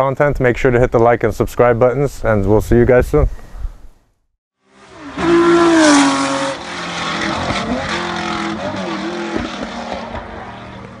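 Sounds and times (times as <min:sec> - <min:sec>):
car engine revving: 0:04.6 - 0:11.0.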